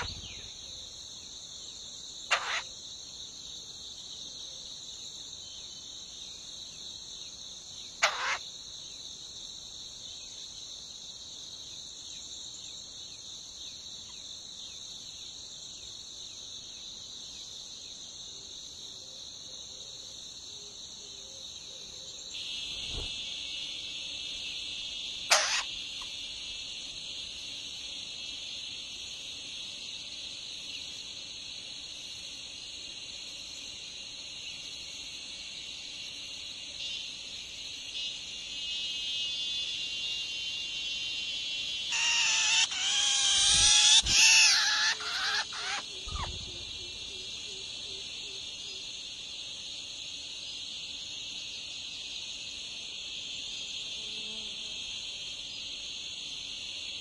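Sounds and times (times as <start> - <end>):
nestlings begging calls: 0.0 - 0.4, 2.3 - 2.7, 8.0 - 8.4, 25.3 - 25.7, 41.8 - 46.5
high insect drone: 0.0 - 57.0.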